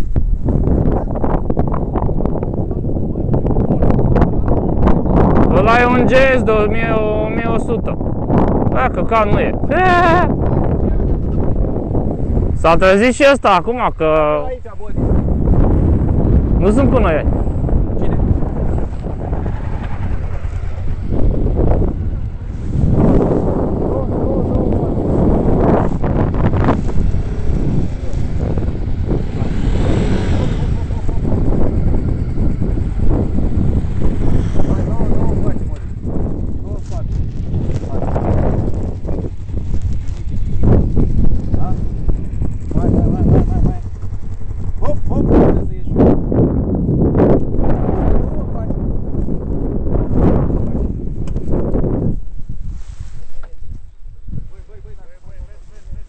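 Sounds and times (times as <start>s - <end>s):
wind buffeting microphone: 0.0s - 56.0s
motorcycle engines passing: 0.5s - 52.6s.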